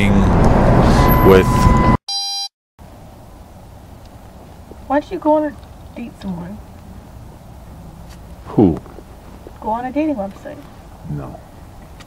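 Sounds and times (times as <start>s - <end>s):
electronic beep: 1.0s - 2.5s.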